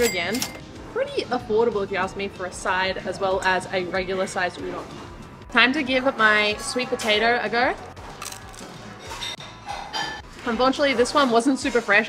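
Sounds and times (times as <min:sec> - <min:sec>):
background music: 0:00.0 - 0:12.0
teeth crunching fried food: 0:08.0 - 0:08.8.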